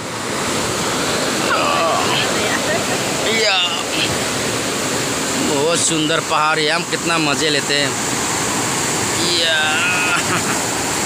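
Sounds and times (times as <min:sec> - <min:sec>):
river rushing over boulders: 0:00.0 - 0:11.0.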